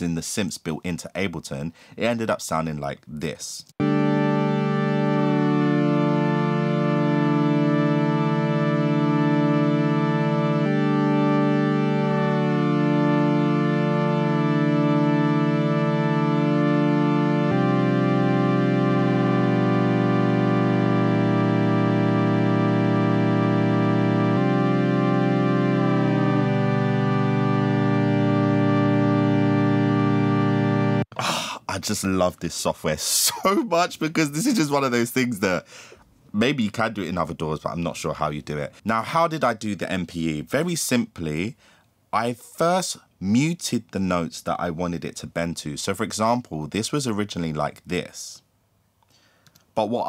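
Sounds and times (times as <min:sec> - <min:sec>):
sustained synth chords gliding: 0:03.8 - 0:31.1.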